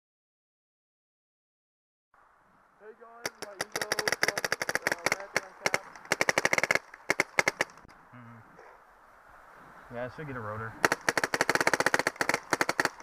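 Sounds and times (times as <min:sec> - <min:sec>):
paintball marker firing pops: 0:03.2 - 0:07.9, 0:10.8 - 0:13.0.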